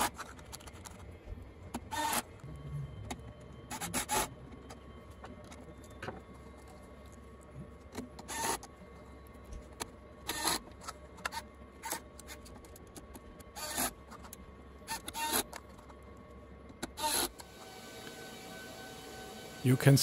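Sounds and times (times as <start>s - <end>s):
cordless screwdriver whirring: 14.9s - 15.5s, 16.9s - 18.2s.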